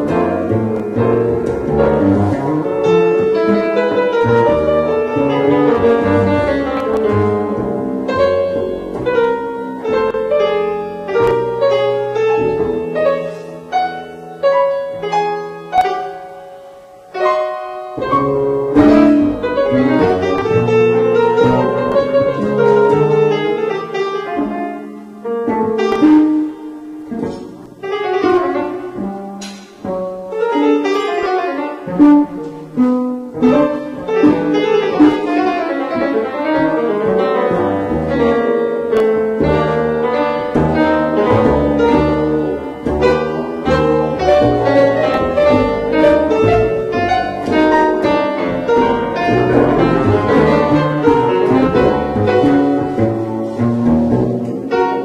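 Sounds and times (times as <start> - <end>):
acoustic grand piano: 0.0 - 55.0
upright double bass: 0.0 - 55.0.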